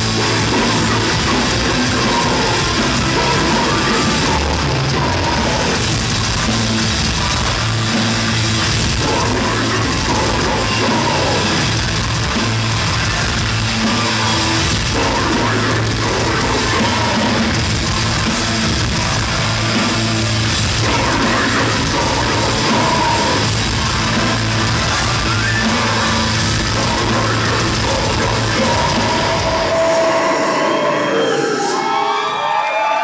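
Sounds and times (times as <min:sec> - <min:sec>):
drum kit: 0:00.0 - 0:30.4
distorted electric guitar: 0:00.0 - 0:31.8.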